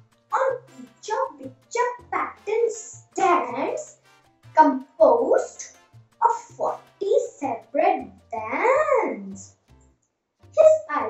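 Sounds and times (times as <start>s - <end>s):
girl reciting a poem: 0.3s - 3.9s, 4.6s - 9.5s, 10.6s - 11.0s.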